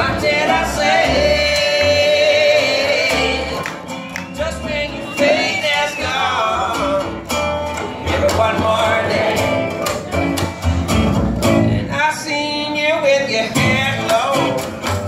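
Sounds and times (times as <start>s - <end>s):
men singing together: 0.0s - 7.2s, 7.8s - 10.0s
plucked upright bass: 0.0s - 12.1s, 13.5s - 15.0s
strummed acoustic guitar: 0.0s - 15.0s.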